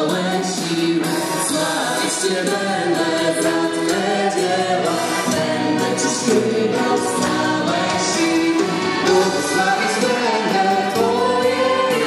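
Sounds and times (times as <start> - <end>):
electric guitar: 0.0 - 12.0
people singing worship song: 0.0 - 12.0
accordion: 0.1 - 12.0.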